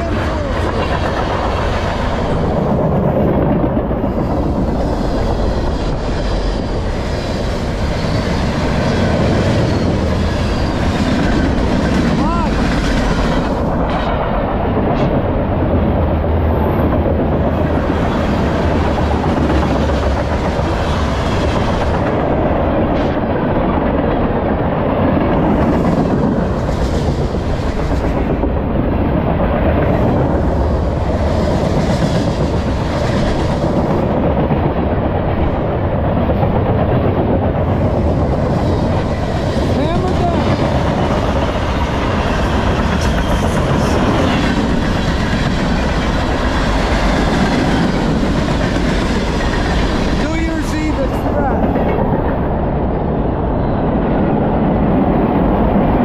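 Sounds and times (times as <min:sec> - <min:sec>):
train cars rolling on rails: 0:00.0 - 0:56.0.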